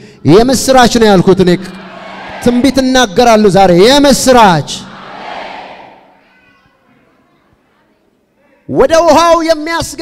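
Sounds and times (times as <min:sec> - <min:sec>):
faint voices in a large hall: 0:00.0 - 0:10.0.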